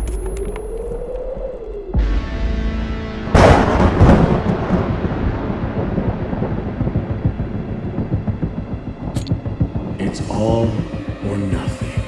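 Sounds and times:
explosion rumble: 3.2s - 11.7s.

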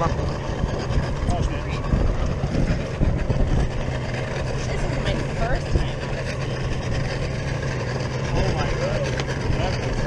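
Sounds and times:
boat hulls thudding: 0.0s - 10.0s
outboard motor idling: 0.0s - 10.0s.

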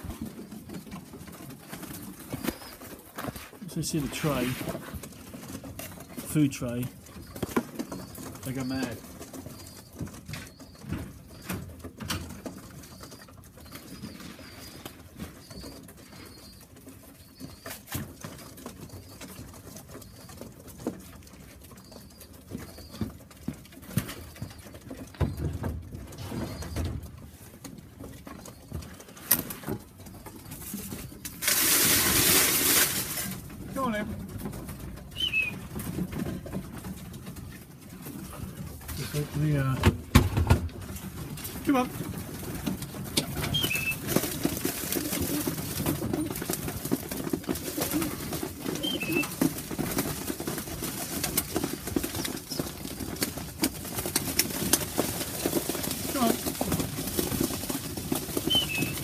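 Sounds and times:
pigeons cooing: 0.0s - 6.3s, 6.9s - 39.7s, 40.7s - 59.0s.

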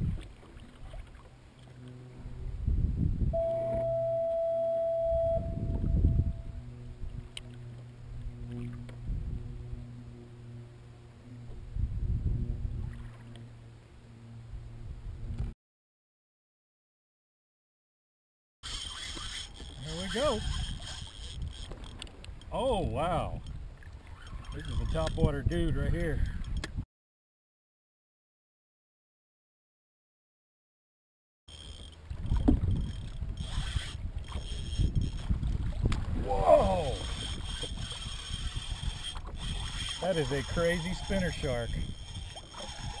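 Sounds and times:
water noise: 0.0s - 15.5s, 18.6s - 26.7s, 31.5s - 43.0s
wind: 0.0s - 15.6s, 18.6s - 26.9s, 31.5s - 43.0s
low rumble: 1.9s - 15.5s
fishing reel under load: 18.6s - 22.5s, 23.4s - 26.7s, 31.5s - 36.0s, 36.6s - 43.0s.

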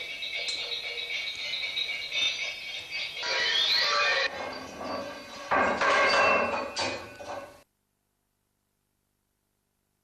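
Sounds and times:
metallic ringing and rattling: 0.0s - 7.6s.

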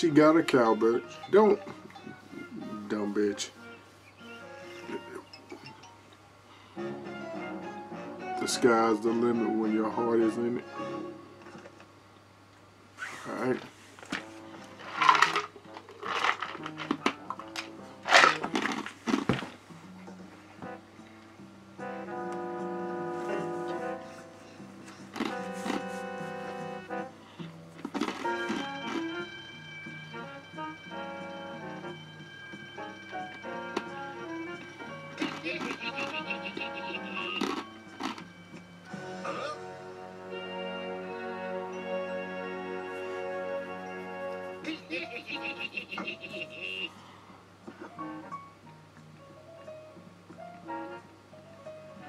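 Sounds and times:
light tuneful music: 0.0s - 52.0s.

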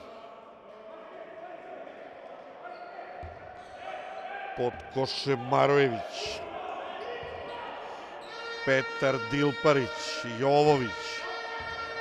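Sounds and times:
faint hall noise: 0.0s - 12.0s.

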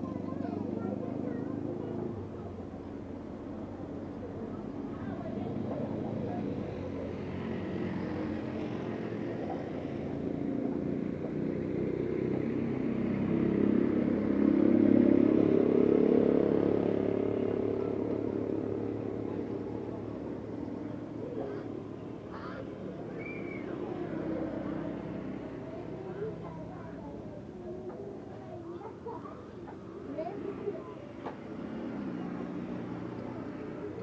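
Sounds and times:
vehicle engine passing: 4.8s - 34.0s.

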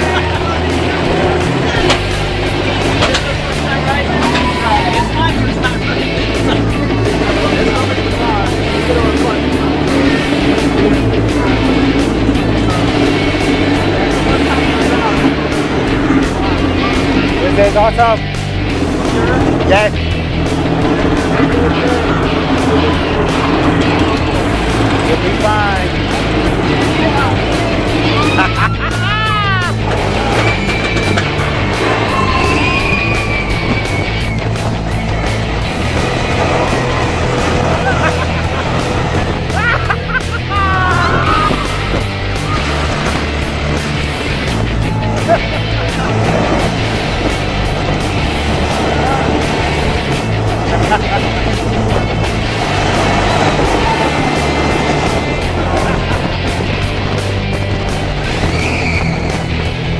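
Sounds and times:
roller coaster rumble: 0.0s - 59.9s
rider yelling: 28.0s - 30.8s, 39.4s - 42.8s.

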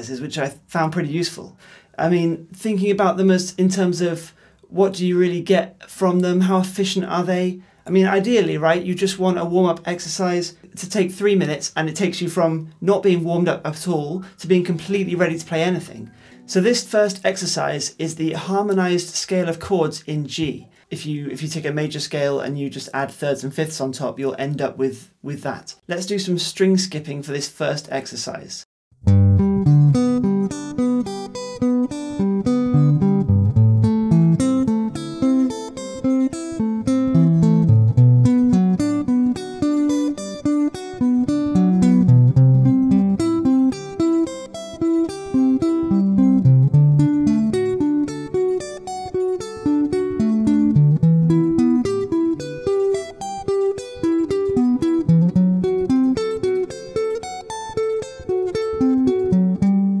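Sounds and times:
electric guitar arpeggios: 29.0s - 60.0s.

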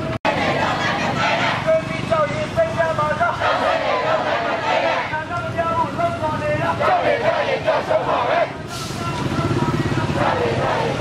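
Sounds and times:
people shouting: 0.3s - 1.7s, 3.1s - 5.2s, 6.7s - 8.6s, 9.9s - 11.0s
motorcycle engine running: 9.1s - 11.0s.

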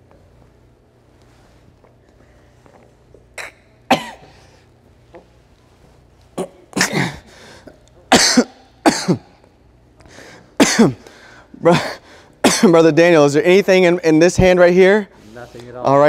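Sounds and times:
man coughing: 3.3s - 4.6s, 6.4s - 9.4s, 10.6s - 12.9s.

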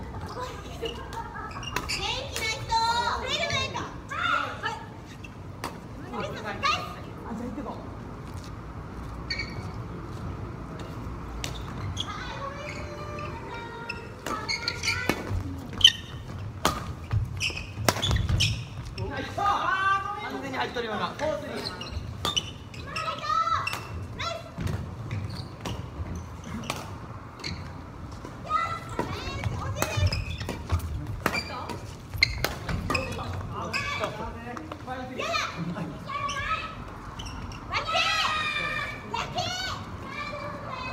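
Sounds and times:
voices calling in a hall: 11.7s - 16.5s, 17.4s - 40.9s
racket hitting shuttlecock: 16.6s - 17.0s, 32.3s - 33.1s.

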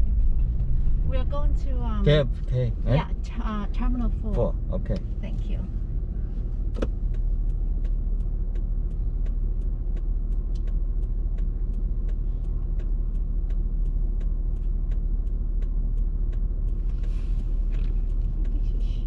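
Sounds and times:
car engine idling: 0.0s - 19.0s
regular light ticking: 1.3s - 19.0s.

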